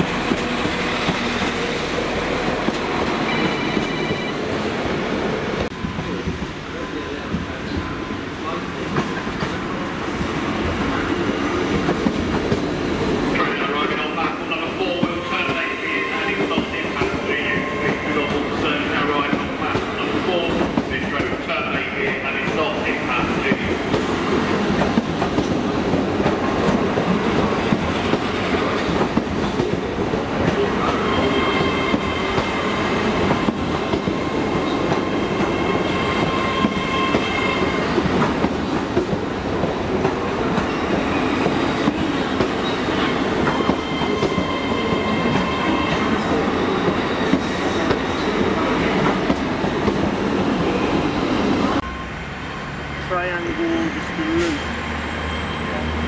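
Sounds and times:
train rumbling past: 0:00.0 - 0:56.0.

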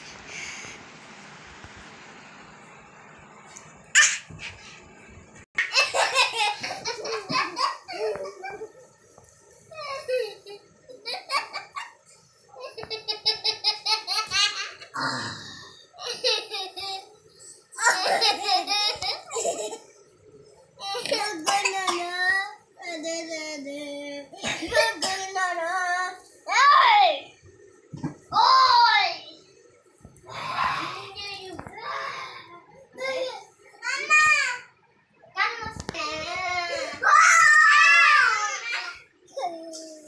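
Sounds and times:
children laughing: 0:05.6 - 0:08.8, 0:17.8 - 0:19.9.

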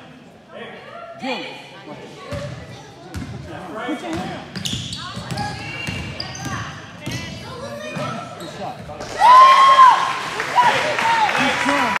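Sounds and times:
shoes squeaking on gym floor: 0:04.5 - 0:08.9
spectators cheering and shouting: 0:09.0 - 0:12.0.

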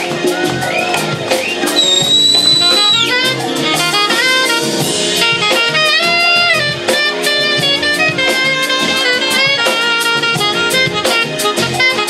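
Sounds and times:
drum kit beat: 0:00.0 - 0:12.0
keyboards: 0:00.0 - 0:12.0
saxophone melody: 0:00.6 - 0:12.0.

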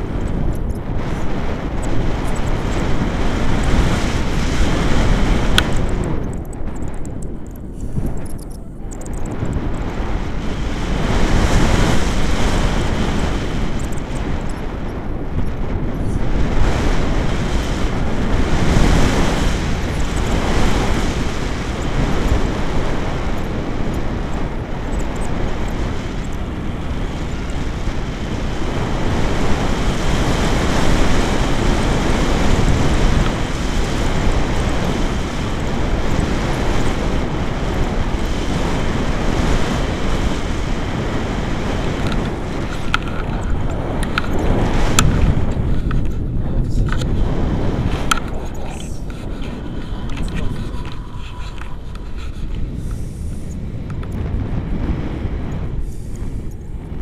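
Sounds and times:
wind rushing over microphone: 0:00.0 - 0:57.0.

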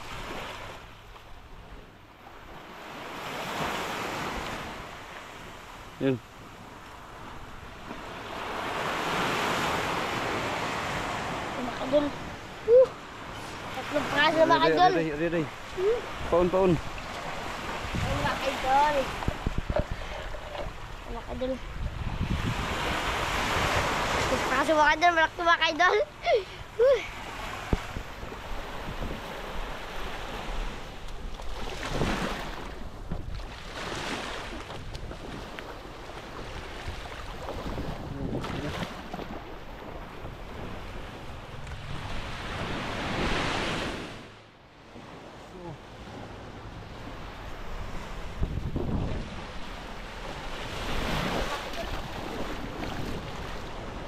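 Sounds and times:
surf washing on beach: 0:00.0 - 0:54.0
wind buffeting microphone: 0:15.6 - 0:25.8, 0:26.5 - 0:43.5, 0:46.0 - 0:54.0.

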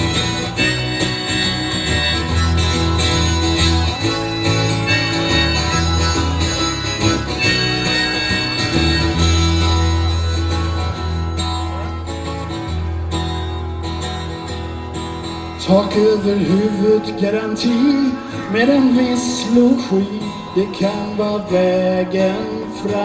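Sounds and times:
low bass notes: 0:00.0 - 0:15.7
acoustic guitars strumming: 0:00.0 - 0:23.0
harmonica melody: 0:00.0 - 0:23.0.

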